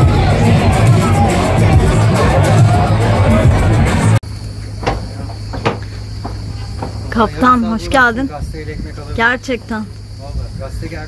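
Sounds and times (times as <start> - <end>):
bar music: 0.0 - 4.2
crowd noise: 0.0 - 8.3
cicadas droning: 4.2 - 11.0
flip-flop footsteps on boardwalk: 4.5 - 7.6.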